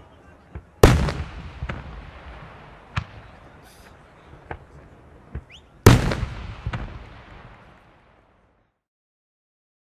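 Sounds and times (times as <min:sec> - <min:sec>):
loud firework bang echoing: 0:00.8 - 0:04.7, 0:05.3 - 0:08.1
firework cracks: 0:00.8 - 0:08.6.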